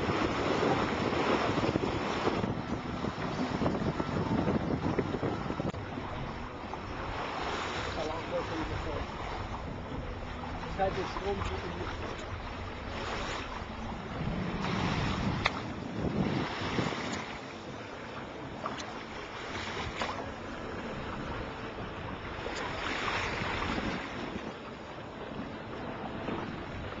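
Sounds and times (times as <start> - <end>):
water rushing along hull: 0.0 - 27.0
wind buffeting microphone: 0.0 - 27.0.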